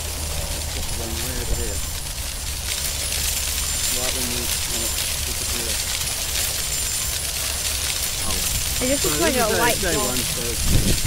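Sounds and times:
wind rumbling on microphone: 0.0 - 11.0
man speaking: 0.8 - 1.8, 3.9 - 5.8, 8.2 - 10.6.

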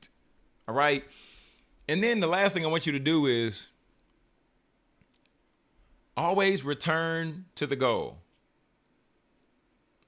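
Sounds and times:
man speaking: 0.7 - 1.1, 1.9 - 3.8, 6.2 - 8.3
faint tiny clicks: 5.0 - 5.4.

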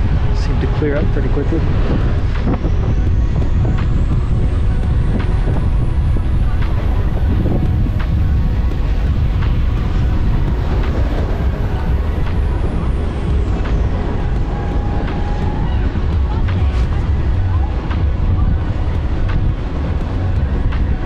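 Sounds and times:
loud low rumble: 0.0 - 21.0.

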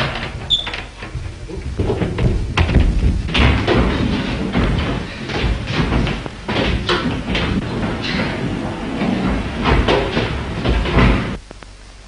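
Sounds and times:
loud rattling and knocking: 0.0 - 11.4.

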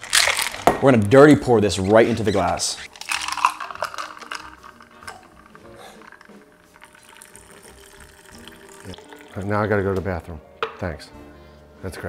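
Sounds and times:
liquid pouring into a glass: 2.9 - 9.8.

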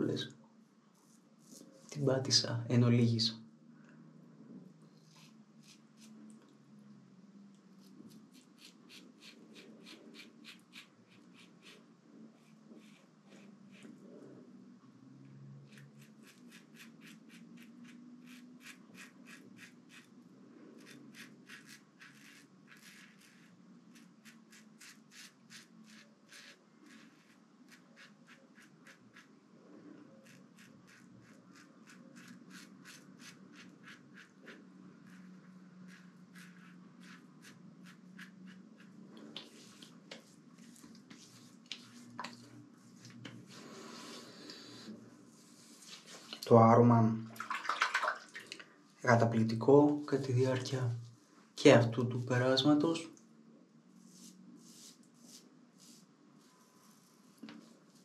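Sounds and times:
razor scratching stubble: 7.8 - 11.8, 15.7 - 20.1, 20.8 - 29.3, 30.2 - 42.2.

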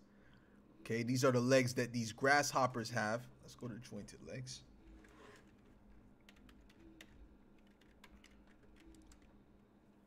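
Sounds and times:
typing on computer keyboard: 4.9 - 9.4.

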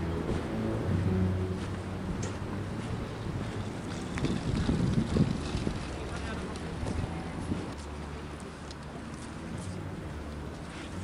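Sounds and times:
wind buffeting microphone: 0.2 - 7.8.

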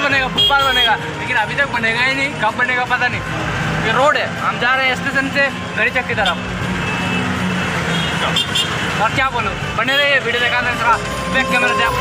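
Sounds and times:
road and traffic noise: 0.0 - 12.0.

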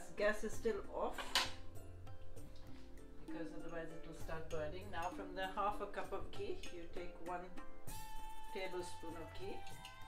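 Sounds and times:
music with held notes: 0.0 - 10.0.

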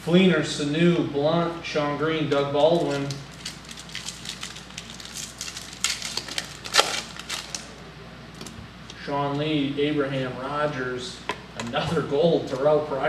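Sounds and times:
foil wrapper crinkling and tearing: 2.6 - 7.7.

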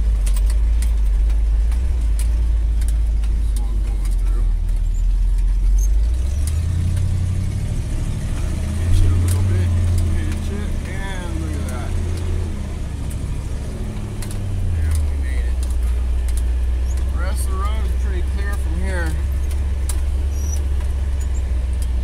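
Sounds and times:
clicks and rattles: 0.0 - 7.2, 8.4 - 22.0
truck engine rumbling: 0.0 - 22.0.

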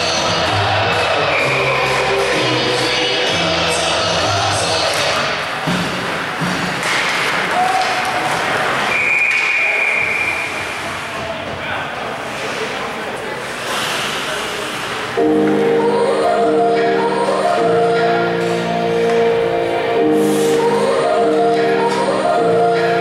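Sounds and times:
loud arena music: 0.0 - 9.0, 15.2 - 23.0
crowd voices: 0.0 - 23.0
skates and sticks on ice: 4.9 - 11.6
short high whistle: 8.9 - 10.6.

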